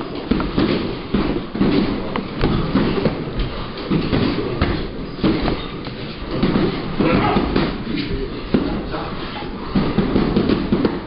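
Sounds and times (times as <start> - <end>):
gloved punches thudding: 9.7 - 11.0.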